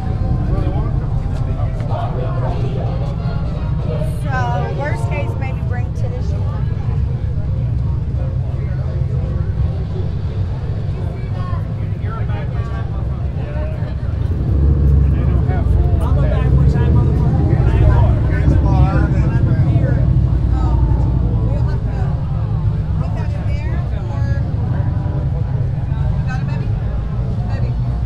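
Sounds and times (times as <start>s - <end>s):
crowd chatter: 0.0s - 28.0s
motorcycle engines running: 0.0s - 28.0s.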